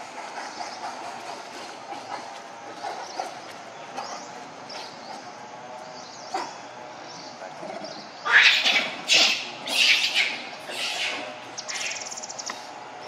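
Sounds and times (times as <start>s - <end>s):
monkey screeching: 8.2s - 12.2s.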